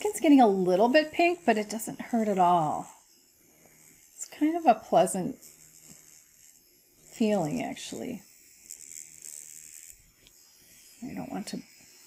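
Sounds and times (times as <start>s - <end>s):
thin high buzz of microneedling pen: 0.0s - 12.0s.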